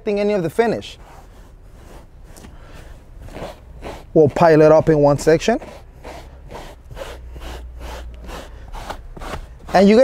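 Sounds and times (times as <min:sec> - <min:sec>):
brush strokes on upholstery: 0:00.1 - 0:10.0.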